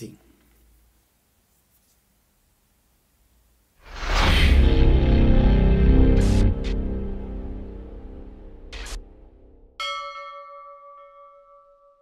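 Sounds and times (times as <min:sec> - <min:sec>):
struck bell ringing: 0:09.8 - 0:12.0.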